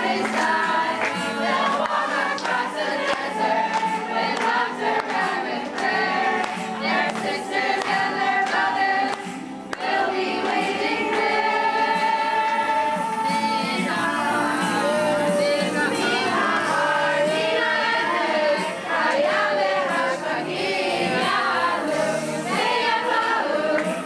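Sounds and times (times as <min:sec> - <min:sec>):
girls singing together: 0:00.0 - 0:24.0.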